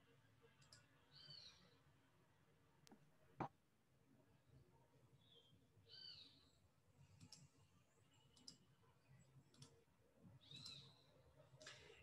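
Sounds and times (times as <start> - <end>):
soft clicks: 0.6 - 0.9, 7.1 - 7.6, 8.3 - 8.7, 9.4 - 9.8.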